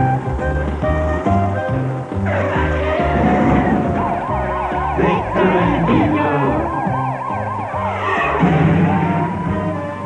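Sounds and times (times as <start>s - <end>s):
upbeat cartoon music with bass beat: 0.0s - 10.0s
warbling siren sound effect: 2.3s - 10.0s.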